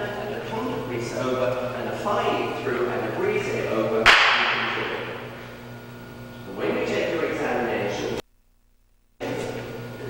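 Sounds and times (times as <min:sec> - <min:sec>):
sharp crack echoing in hall: 0:04.0 - 0:05.2.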